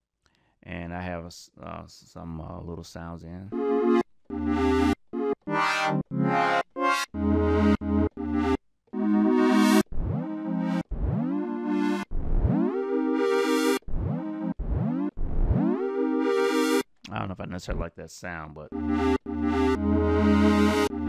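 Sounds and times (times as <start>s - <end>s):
synth notes with rising sweep: 3.6s - 16.8s, 18.7s - 21.0s.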